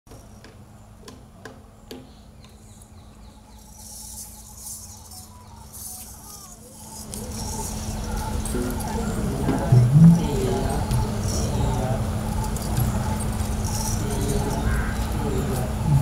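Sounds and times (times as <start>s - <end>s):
low steady hum: 0.1s - 16.0s
high shimmering rattle: 3.1s - 16.0s
drums struck: 9.4s - 10.4s.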